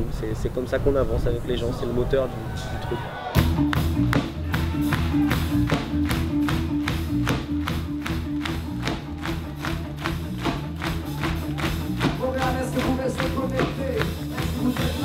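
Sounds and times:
reggae band playing: 3.3 - 15.0
crowd clapping in time: 3.4 - 15.0.

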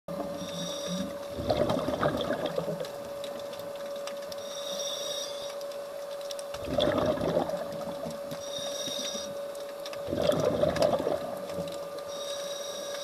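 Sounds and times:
exhaled bubbles crackling: 0.1 - 4.4, 6.1 - 12.2
regulator inhale hiss: 0.3 - 1.2, 4.4 - 5.5, 8.4 - 9.5, 12.1 - 13.0.

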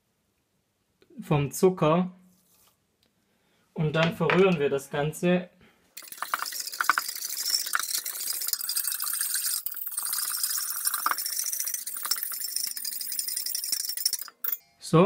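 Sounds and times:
whisk rattling in steel bowl: 6.0 - 14.6.

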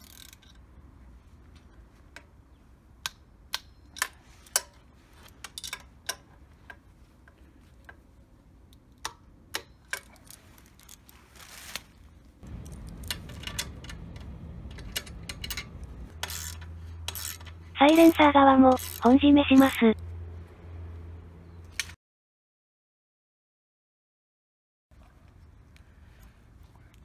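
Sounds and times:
low steady rumble: 12.2 - 21.4
torque wrench clicking: 14.7 - 17.6, 18.7 - 19.0.

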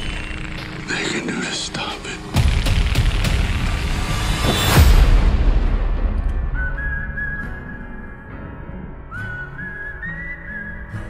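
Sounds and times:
whistled melody: 6.1 - 11.0.

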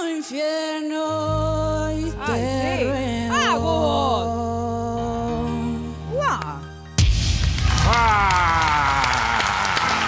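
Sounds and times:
audience applauding and cheering: 7.3 - 10.0
long cheer sliding down in pitch: 7.6 - 10.0.

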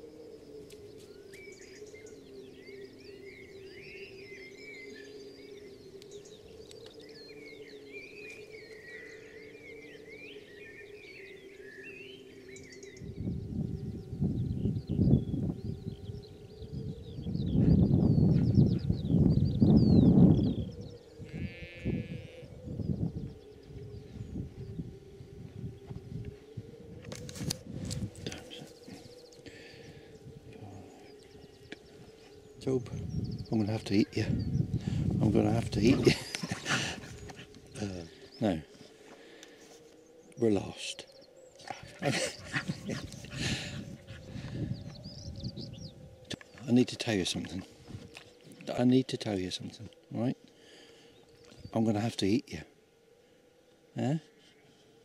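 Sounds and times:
steady low hum: 0.0 - 55.0
warbling birdsong: 0.0 - 55.0
sheep bleating: 21.2 - 22.5.

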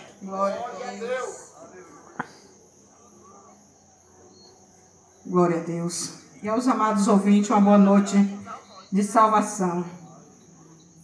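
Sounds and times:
faint high-pitched background noise: 0.0 - 11.0.

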